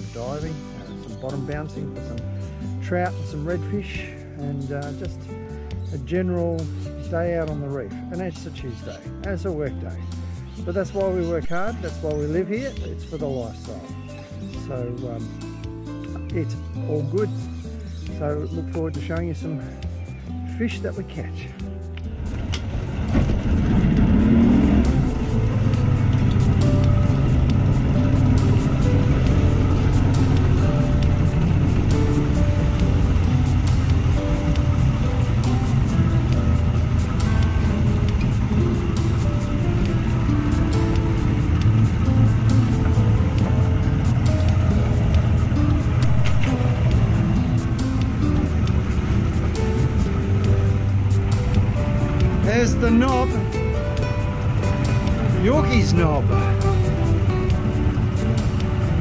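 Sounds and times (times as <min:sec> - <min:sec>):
boat engine rumbling: 0:00.0 - 0:59.0
jazz guitar music: 0:21.6 - 0:59.0.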